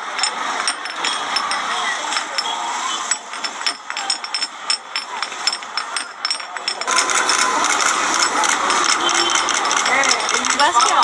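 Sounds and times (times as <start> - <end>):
hissy crowd ambience: 0.0 - 11.0
traffic: 0.0 - 11.0
chatter of voices: 0.4 - 11.0.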